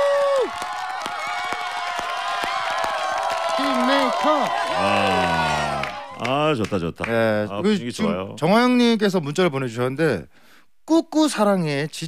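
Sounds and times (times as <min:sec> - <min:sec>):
long drawn-out cheer: 0:00.0 - 0:06.6
people clapping: 0:00.0 - 0:07.3.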